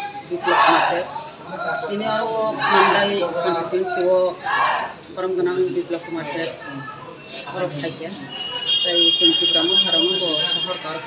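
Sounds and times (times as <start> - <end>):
high-pitched alarm tone: 8.6 - 11.0.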